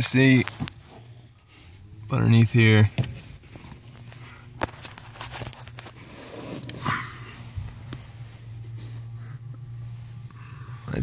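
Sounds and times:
steady low hum: 0:00.0 - 0:11.0
hands rustling wiring and plastic: 0:03.0 - 0:06.8.

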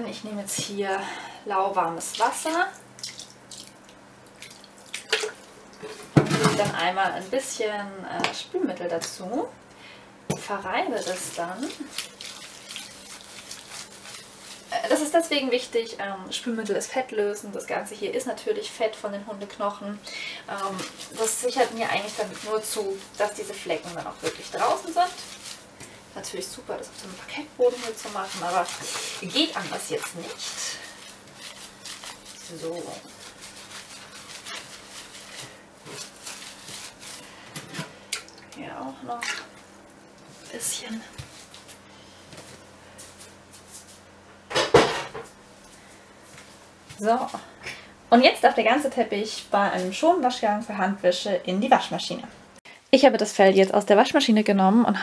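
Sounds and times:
hands rubbing wet fibres: 0:10.8 - 0:15.5, 0:20.4 - 0:44.1.

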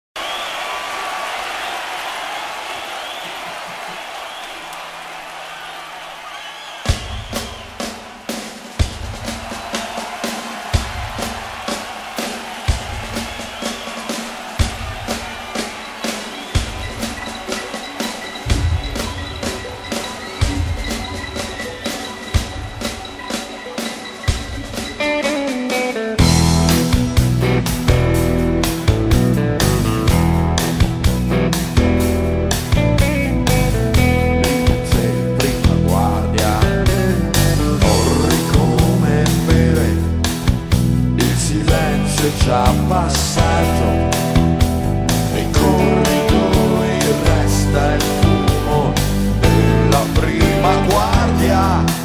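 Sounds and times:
crowd noise: 0:00.2 - 0:52.0
drum kit beat: 0:02.7 - 0:52.0
guitar: 0:23.2 - 0:52.0.

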